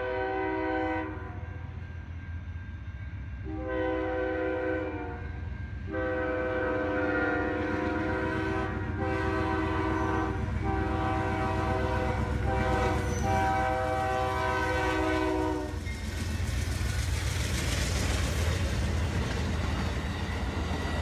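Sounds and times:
train air horn blasts: 0:00.0 - 0:01.5, 0:03.4 - 0:15.8
train wheels on rails: 0:00.0 - 0:21.0
locomotive rumble: 0:05.8 - 0:21.0.

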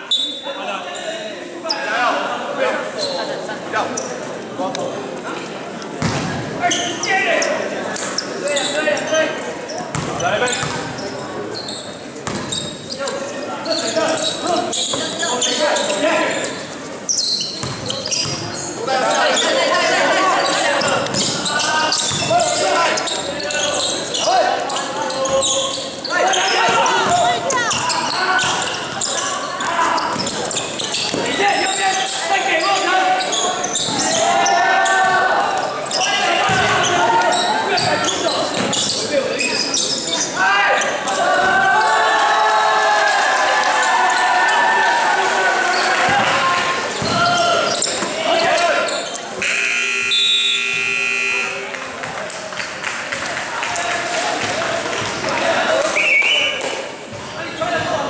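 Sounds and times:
basketball bouncing on hardwood: 0:17.6 - 0:18.4.

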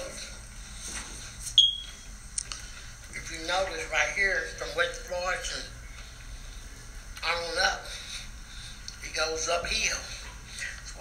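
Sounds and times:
faint room noise: 0:00.0 - 0:11.0
high-pitched electronic beep: 0:01.6 - 0:02.0.

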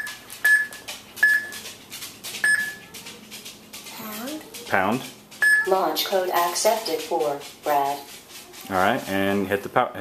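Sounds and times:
short high beeps: 0:02.4 - 0:02.8, 0:05.4 - 0:05.7.

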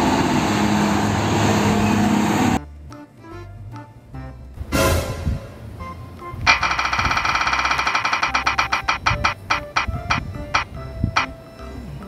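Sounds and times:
light background music: 0:02.6 - 0:12.0
prize wheel ticking: 0:06.4 - 0:11.4.

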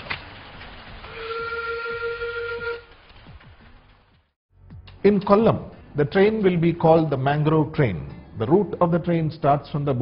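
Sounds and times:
locomotive whistle: 0:01.1 - 0:02.9.

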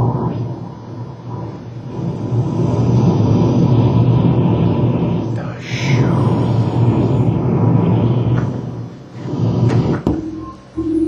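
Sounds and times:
low rumbling drone: 0:00.0 - 0:11.0
faint steady high tone: 0:10.2 - 0:11.0.

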